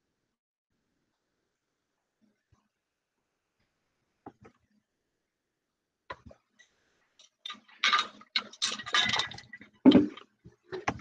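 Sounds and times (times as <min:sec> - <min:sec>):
clinking and clattering: 0:07.2 - 0:10.2.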